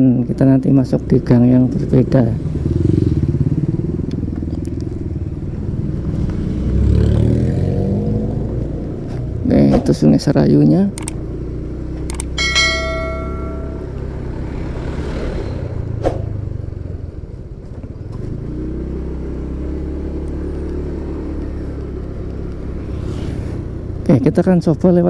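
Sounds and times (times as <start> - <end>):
road noise: 0.0 - 25.0
sharp click: 11.0 - 11.2, 12.0 - 12.4
motorcycle engine running: 11.0 - 14.8
steady pitched tone: 12.4 - 14.0.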